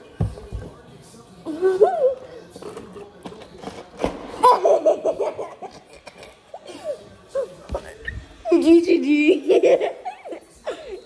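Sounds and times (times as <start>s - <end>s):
stifled laughter and giggling: 1.4s - 2.3s, 4.4s - 7.6s, 9.3s - 11.0s.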